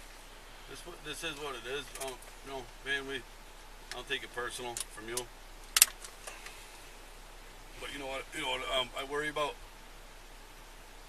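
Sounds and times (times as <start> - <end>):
sharp click: 4.8 - 6.1.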